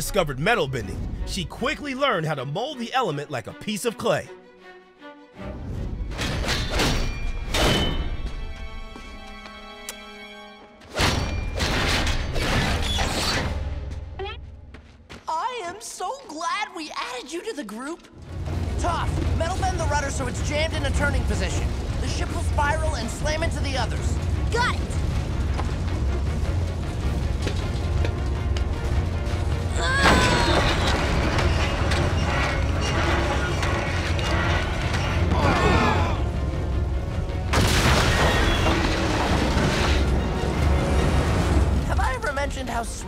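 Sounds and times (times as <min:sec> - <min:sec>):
dramatic orchestral score: 0:00.0 - 0:14.1, 0:18.0 - 0:43.0
deep rumble: 0:18.2 - 0:37.6
metal grinding and creaking: 0:19.2 - 0:36.6
girl effort cry: 0:29.7 - 0:30.9
metal bending mechanical noise: 0:30.7 - 0:35.4.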